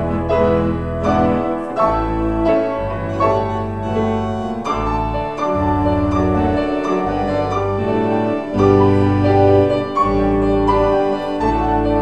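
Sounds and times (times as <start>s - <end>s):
solo grand piano chords: 0.0s - 12.0s.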